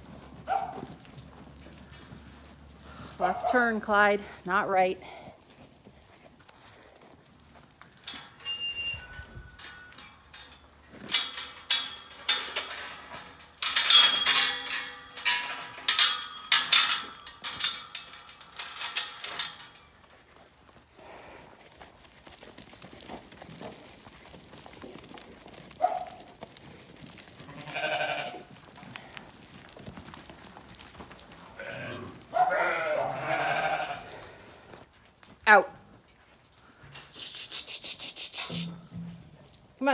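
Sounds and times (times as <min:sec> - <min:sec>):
sheep bleating: 0:27.4 - 0:28.5, 0:31.6 - 0:34.2.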